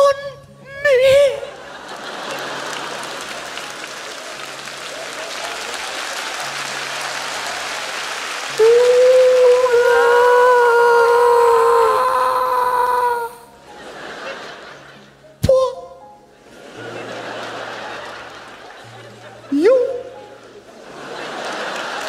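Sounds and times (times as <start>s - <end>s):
audience applause: 1.5s - 13.2s, 16.7s - 19.4s, 20.6s - 22.0s.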